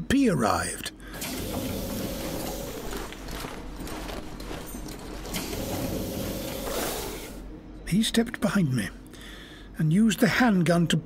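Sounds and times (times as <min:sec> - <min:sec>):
low steady hum: 0:00.0 - 0:11.0
mechanical hiss: 0:01.2 - 0:02.9, 0:05.3 - 0:07.5.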